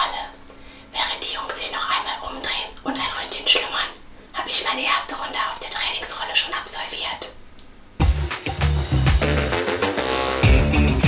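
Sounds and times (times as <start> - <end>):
woman whispering: 0.0 - 7.4.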